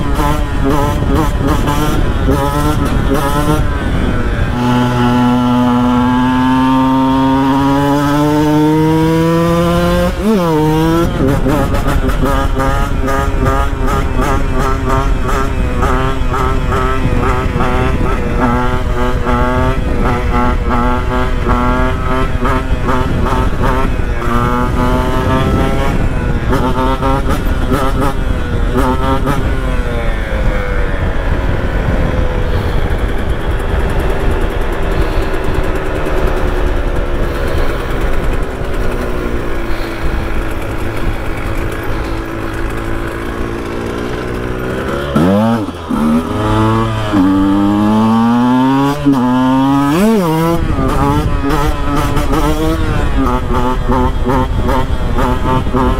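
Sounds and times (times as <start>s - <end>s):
two-stroke engine revving hard: 0.0s - 55.9s.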